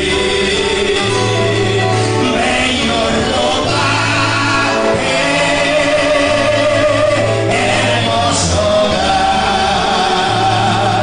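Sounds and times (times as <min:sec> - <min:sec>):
acoustic guitar: 0:00.0 - 0:11.0
men singing gospel song: 0:00.0 - 0:11.0.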